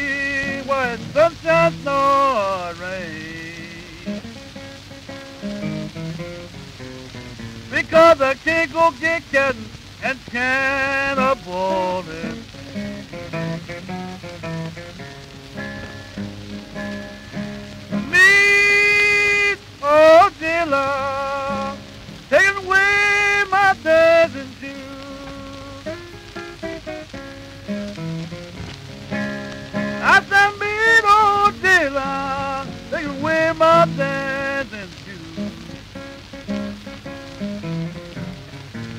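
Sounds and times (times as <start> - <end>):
man singing: 0.0 - 4.3, 7.7 - 13.7, 17.3 - 26.2, 29.7 - 36.9
acoustic guitar picking: 0.0 - 38.9
record hiss and crackle: 0.0 - 38.9.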